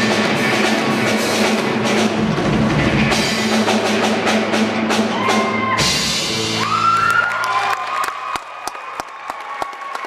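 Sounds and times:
audience whistles and whoops: 0:05.1 - 0:10.0
scattered clapping: 0:07.0 - 0:10.0.

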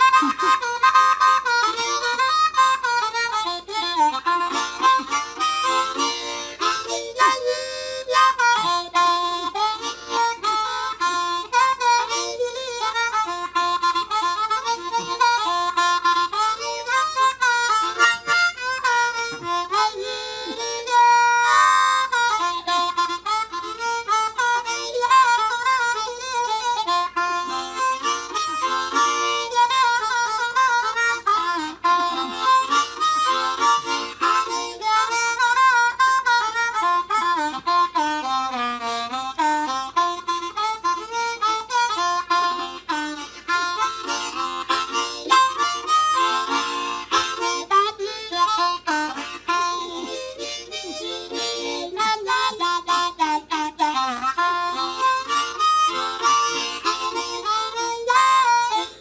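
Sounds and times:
blues harmonica: 0:00.0 - 0:59.0.

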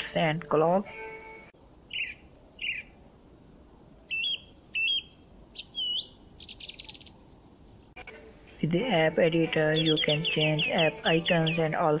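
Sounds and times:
bird chirps: 0:01.9 - 0:02.9, 0:04.1 - 0:08.1, 0:09.6 - 0:12.0
buzzy bird trill: 0:01.9 - 0:02.9, 0:04.1 - 0:08.0, 0:09.5 - 0:12.0.

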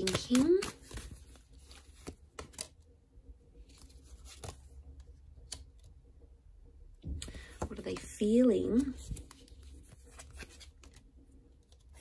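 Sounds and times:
cards being shuffled: 0:00.0 - 0:02.8, 0:03.6 - 0:05.9, 0:07.2 - 0:12.0.

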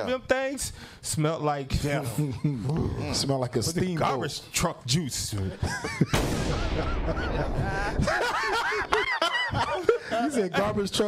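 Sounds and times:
men laughing: 0:05.4 - 0:10.6.

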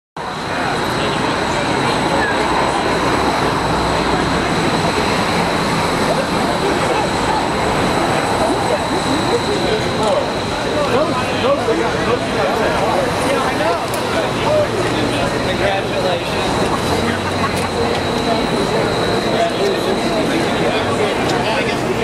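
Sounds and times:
crowd chatting: 0:00.2 - 0:22.0
street traffic noise: 0:00.2 - 0:22.0.

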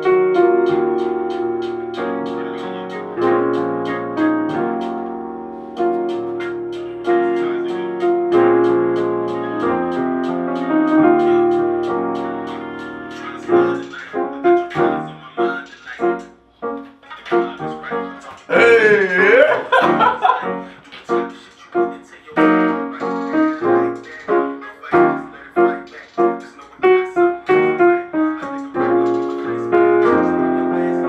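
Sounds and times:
digital piano chords and runs: 0:00.0 - 0:31.0
person's wavering voice: 0:17.6 - 0:21.0.

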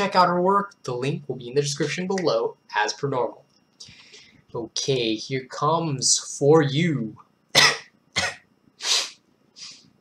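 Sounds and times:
man coughing: 0:07.6 - 0:08.5.

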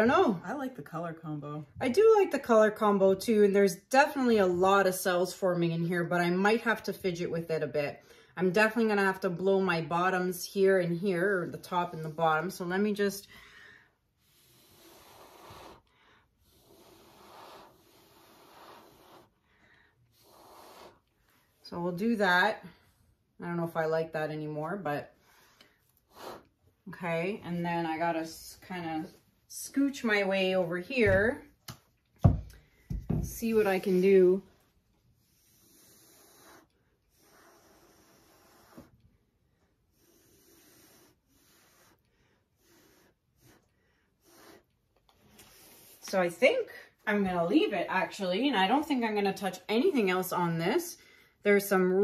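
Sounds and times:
person blowing air by mouth: 0:14.1 - 0:21.2, 0:25.2 - 0:26.6, 0:35.2 - 0:39.1, 0:39.7 - 0:44.7, 0:45.3 - 0:46.1.

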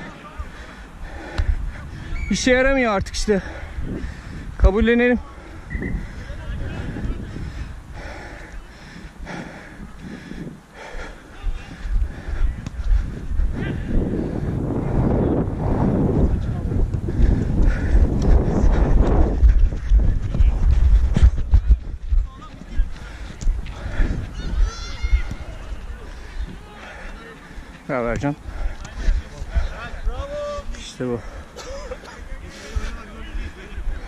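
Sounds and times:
wind rumbling on camera: 0:00.8 - 0:34.0
players shouting: 0:24.0 - 0:27.5.

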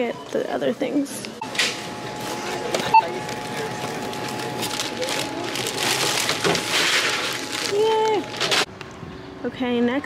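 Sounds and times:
plastic bags rustling: 0:03.3 - 0:08.7.

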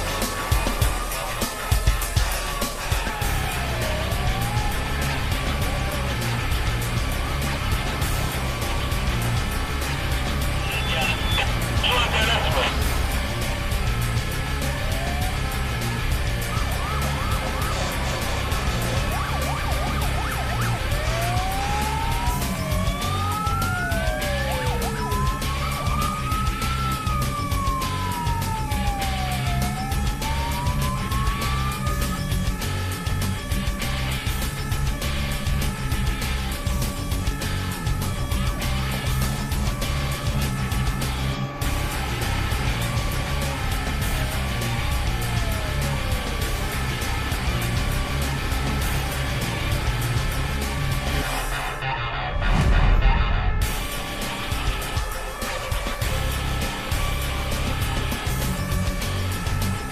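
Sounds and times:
background music with beat: 0:00.0 - 0:59.9
fire engine siren wailing: 0:00.0 - 0:59.9.

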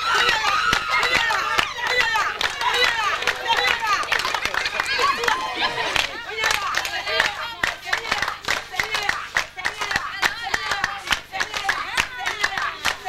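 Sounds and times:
women clapping in rhythm: 0:00.0 - 0:13.0
women singing: 0:00.0 - 0:13.0.

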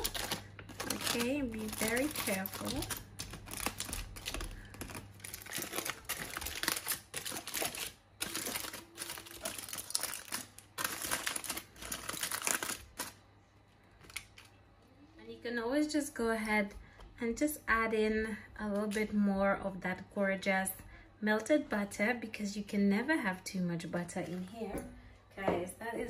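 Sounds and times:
foil packet crinkling: 0:00.0 - 0:13.2, 0:13.9 - 0:14.6.

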